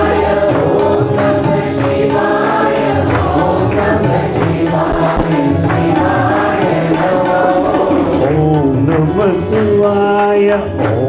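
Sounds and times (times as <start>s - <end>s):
group singing devotional song: 0.0s - 11.0s.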